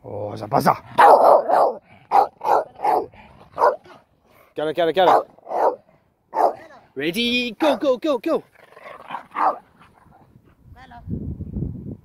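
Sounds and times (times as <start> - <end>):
dog barking: 1.0 - 4.0, 5.0 - 6.7, 9.1 - 9.6.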